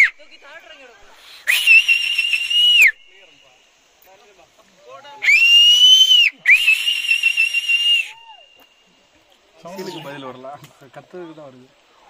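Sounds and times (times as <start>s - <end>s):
loud finger whistling: 1.3s - 3.0s, 5.2s - 8.4s.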